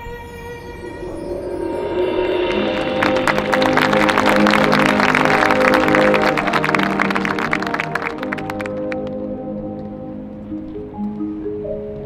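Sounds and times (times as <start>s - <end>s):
rapid percussion: 0.5s - 9.0s
marching band chords: 2.5s - 10.7s.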